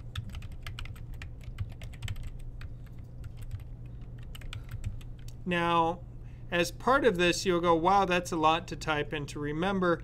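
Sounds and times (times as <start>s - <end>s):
computer keyboard typing: 0.0s - 5.4s.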